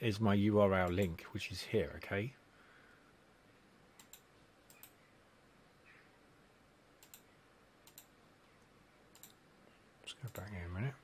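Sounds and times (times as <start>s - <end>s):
computer mouse clicking: 4.0s - 5.0s, 7.0s - 8.2s, 9.1s - 9.4s, 10.2s - 10.5s.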